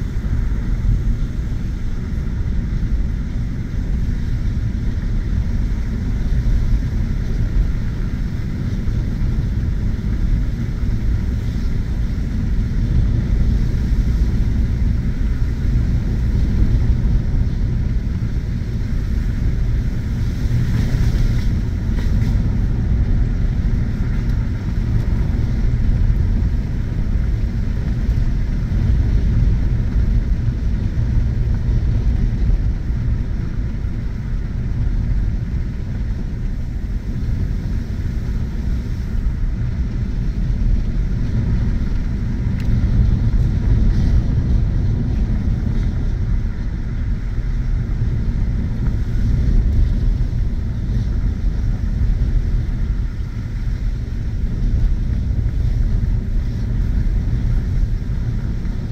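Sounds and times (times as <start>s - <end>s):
truck engine and tyres rumbling: 0.0s - 58.9s.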